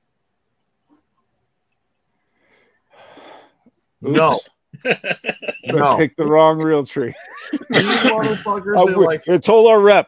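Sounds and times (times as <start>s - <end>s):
person exhaling: 2.4s - 3.6s.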